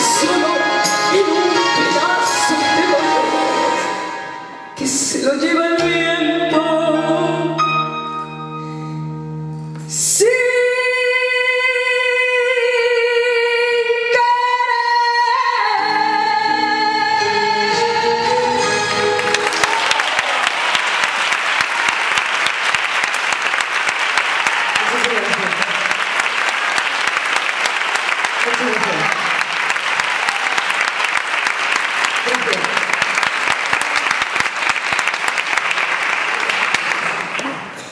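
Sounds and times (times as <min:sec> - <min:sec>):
audience applauding: 0:19.2 - 0:37.9.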